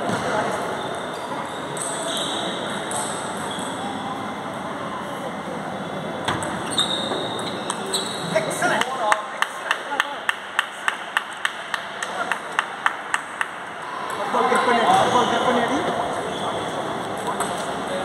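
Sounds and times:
background chatter of voices: 0.0s - 18.0s
people clapping: 8.6s - 13.9s.

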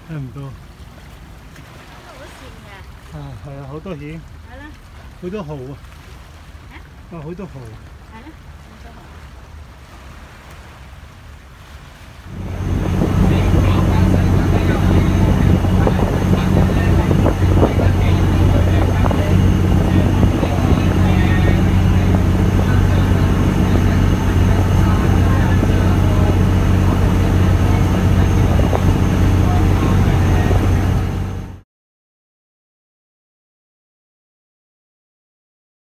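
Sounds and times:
water noise: 0.0s - 31.6s
boat engine running: 12.2s - 31.6s
wind noise: 12.3s - 31.6s.

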